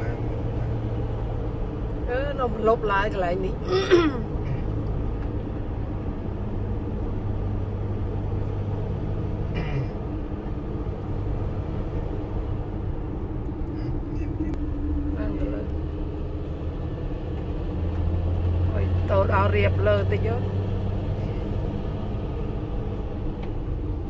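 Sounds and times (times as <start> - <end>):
car cabin road and engine drone: 0.0 - 24.0.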